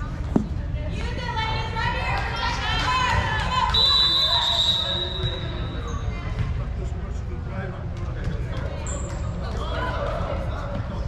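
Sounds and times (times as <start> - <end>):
voices of players and spectators: 0.0 - 11.0
referee's whistle blast: 3.8 - 5.8.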